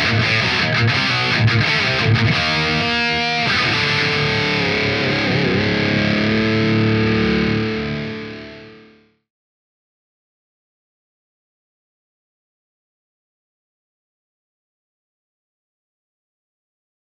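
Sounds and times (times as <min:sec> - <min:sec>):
distorted electric guitar chord: 0:00.0 - 0:09.2.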